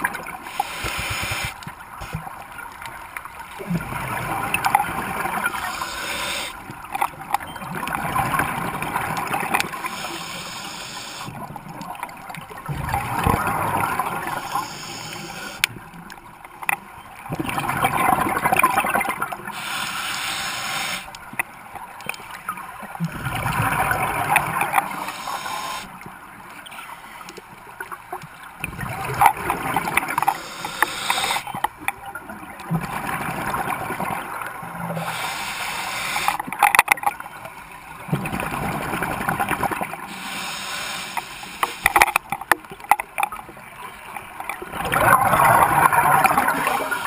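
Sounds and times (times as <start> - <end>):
regulator hiss on inhale: 0.5 - 2.2, 5.5 - 6.6, 9.8 - 11.3, 14.1 - 15.7, 19.5 - 21.2, 24.9 - 25.9, 30.2 - 31.5, 35.0 - 36.4, 40.1 - 42.0
exhaled bubbles gurgling: 3.6 - 15.8, 22.8 - 26.1, 28.6 - 36.3, 44.6 - 47.0.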